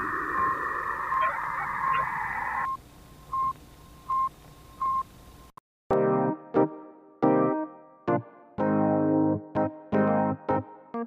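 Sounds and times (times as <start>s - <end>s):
radio static hiss: 0.0s - 2.8s.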